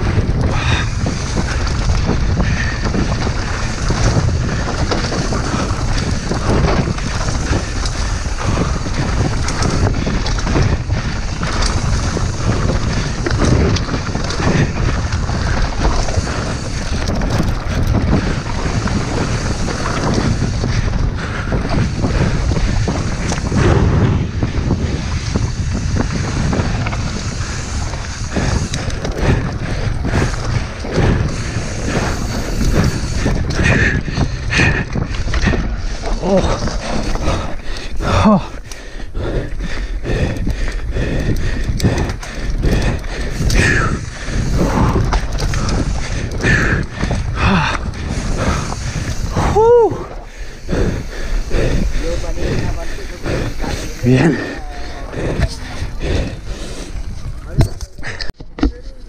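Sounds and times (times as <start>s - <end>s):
wind on microphone: 0.0s - 58.4s
bike rattling over ground: 0.0s - 59.0s.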